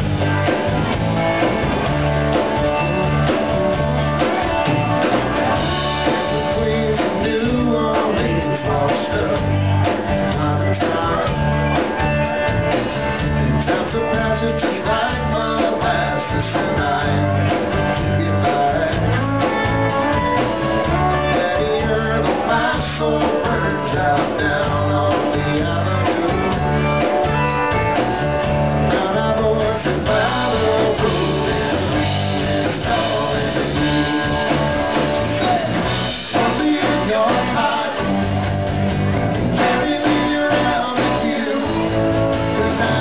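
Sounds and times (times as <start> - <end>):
acoustic guitar: 0.0 - 43.0
bass line: 0.0 - 43.0
drums: 0.0 - 43.0
electric guitars: 0.0 - 43.0
live rock band playing: 0.0 - 43.0
man singing: 5.4 - 11.5, 13.4 - 19.6, 20.8 - 27.1, 28.8 - 38.2, 39.6 - 43.0.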